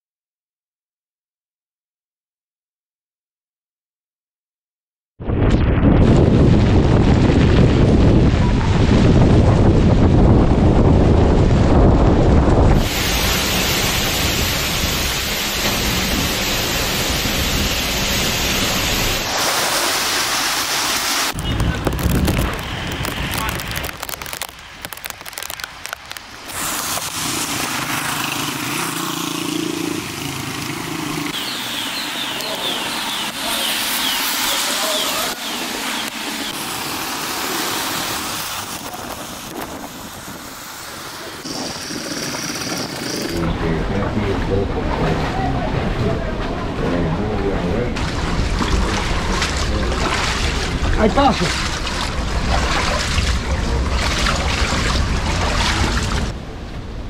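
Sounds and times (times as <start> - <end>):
loud storm wind: 5.2 - 27.8, 35.2 - 57.0
rain: 6.0 - 57.0
people's voices: 34.4 - 35.6, 43.2 - 48.0.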